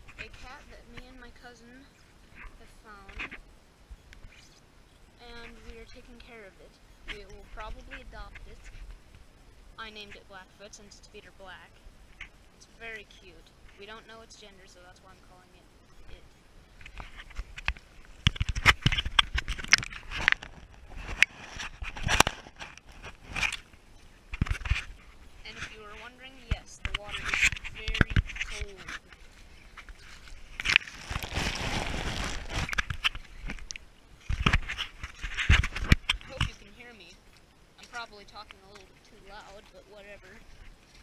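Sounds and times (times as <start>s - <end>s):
footsteps on wet grass and mud: 16.8s - 33.6s
camera knocks and rubbing: 34.3s - 36.5s.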